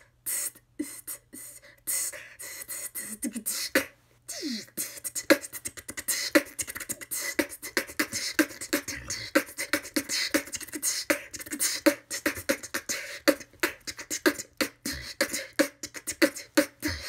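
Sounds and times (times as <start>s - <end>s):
woman beatboxing: 0.0s - 17.0s.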